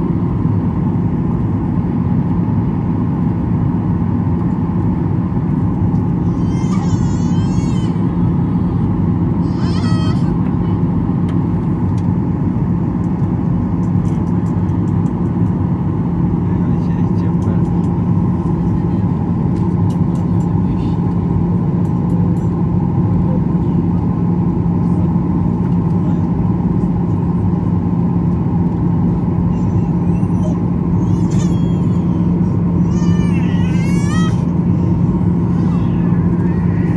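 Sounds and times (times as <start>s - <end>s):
jet cabin engine drone: 0.0s - 36.9s.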